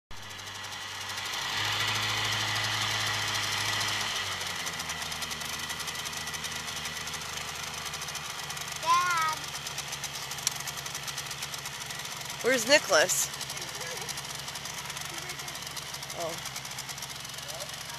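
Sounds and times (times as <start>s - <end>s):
outboard motor idling: 0.1s - 17.9s.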